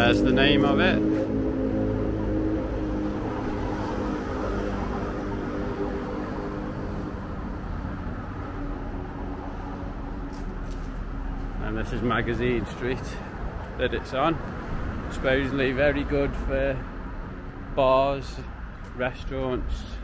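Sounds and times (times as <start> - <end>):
low rumble of traffic: 0.0 - 20.0.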